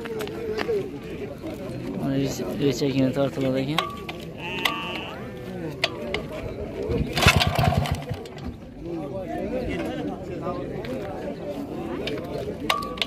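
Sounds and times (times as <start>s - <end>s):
small engine turning over: 7.1s - 8.5s.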